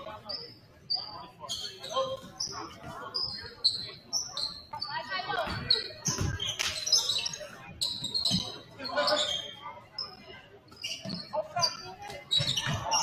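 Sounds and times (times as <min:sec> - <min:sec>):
sneakers squeaking on court: 0:00.3 - 0:13.0.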